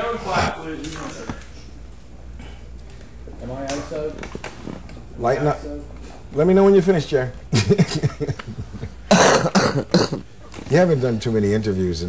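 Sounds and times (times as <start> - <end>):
man coughing: 9.0 - 10.3.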